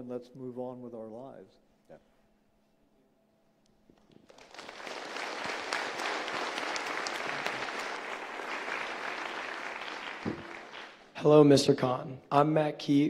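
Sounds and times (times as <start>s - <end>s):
audience applauding: 4.1s - 11.1s.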